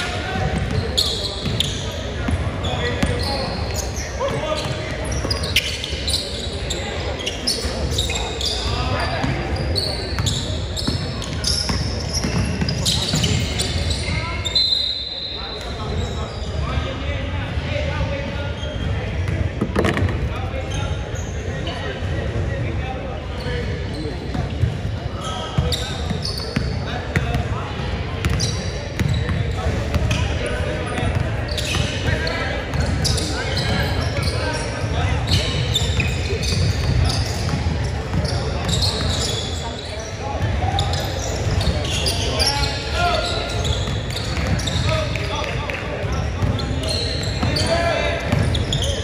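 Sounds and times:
sneakers squeaking: 0.0 - 49.0
whistle blowing: 14.5 - 15.5.

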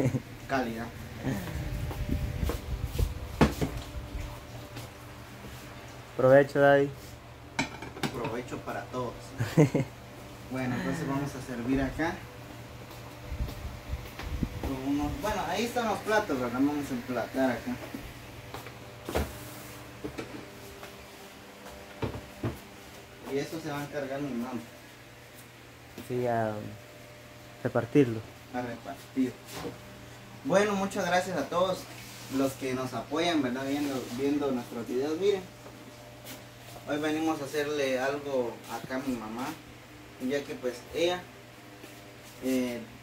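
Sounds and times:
dishes clunking on a table: 7.6 - 8.4.

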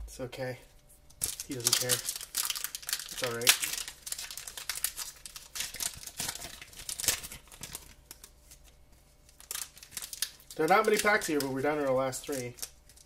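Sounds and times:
foil wrapper tearing and crinkling: 1.1 - 13.0.

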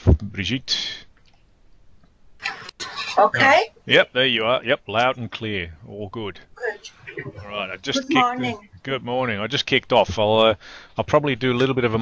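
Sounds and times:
person speaking: 6.0 - 8.8.

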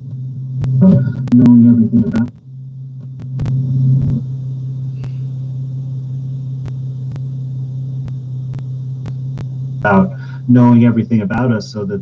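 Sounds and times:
steady low hum: 0.0 - 12.0
sharp clicks: 2.2 - 4.1, 6.6 - 7.3, 8.0 - 9.6.

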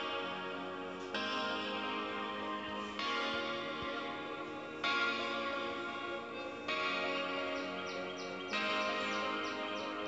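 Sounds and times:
background guitar music: 0.0 - 10.0.

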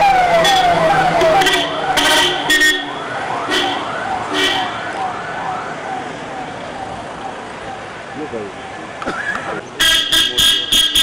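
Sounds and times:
police siren wailing: 0.0 - 9.6
passing traffic: 0.0 - 11.0.

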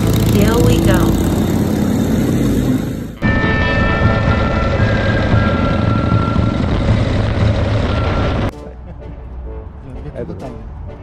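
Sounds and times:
motorcycle engine rumble: 0.0 - 8.5.

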